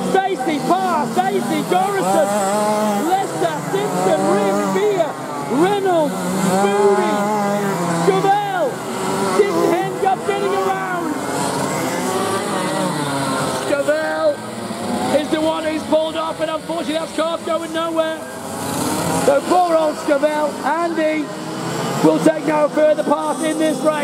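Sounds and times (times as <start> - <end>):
kart engines revving: 0.0 - 24.0.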